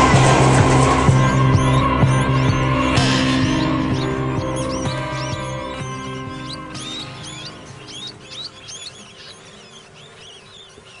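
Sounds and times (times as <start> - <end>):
music: 0.0 - 9.6.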